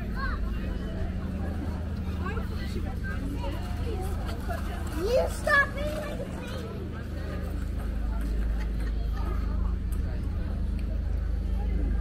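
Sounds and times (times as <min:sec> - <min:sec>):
passers-by chatting: 0:00.0 - 0:12.0
steady low hum: 0:00.0 - 0:12.0.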